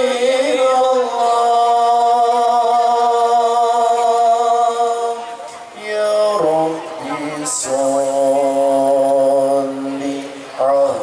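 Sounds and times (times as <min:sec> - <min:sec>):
man chanting devotional song: 0:00.0 - 0:11.0.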